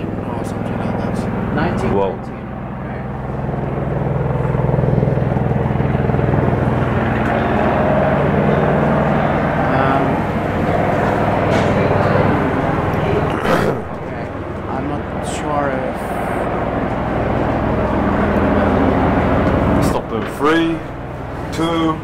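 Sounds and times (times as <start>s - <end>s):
elevator hoist motor humming: 0.0s - 15.2s, 16.4s - 22.0s.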